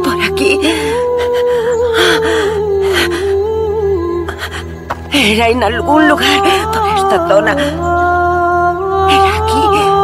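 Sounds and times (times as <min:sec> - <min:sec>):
slow humming melody: 0:00.0 - 0:10.0.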